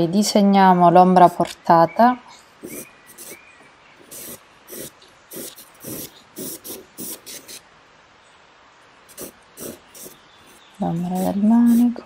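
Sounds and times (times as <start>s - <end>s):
pencil scratching on paper: 2.6s - 3.4s, 4.0s - 7.6s, 9.1s - 12.0s.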